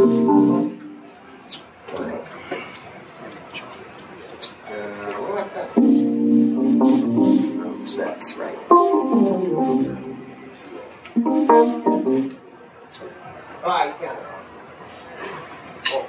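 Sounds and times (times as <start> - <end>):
keyboard piano chords: 0.0 - 1.3, 5.8 - 12.6.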